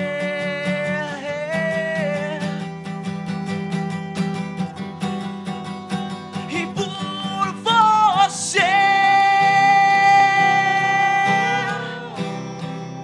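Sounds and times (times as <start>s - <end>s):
man singing: 0.0s - 3.0s, 6.4s - 12.6s
acoustic guitars strumming: 0.0s - 13.0s.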